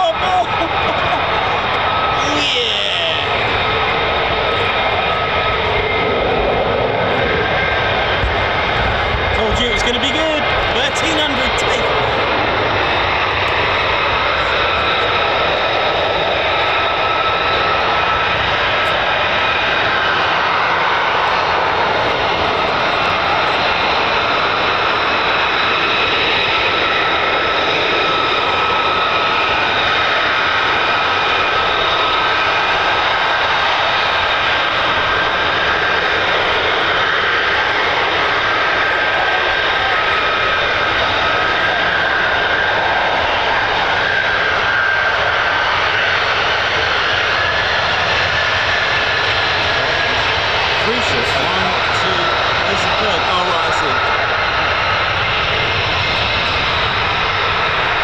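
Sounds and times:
jet engine roar with high whine: 0:00.0 - 0:58.0.

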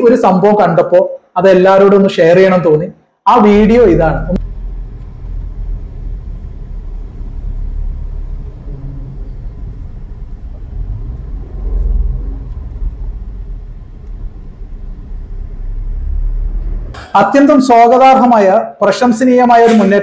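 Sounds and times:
vehicle road and engine rumble: 0:04.4 - 0:17.0.

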